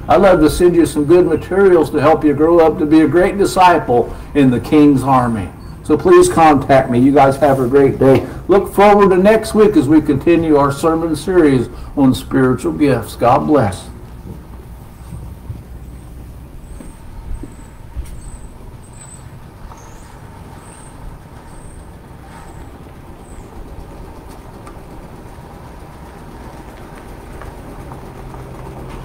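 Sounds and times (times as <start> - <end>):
vehicle engines idling: 0.0 - 29.0.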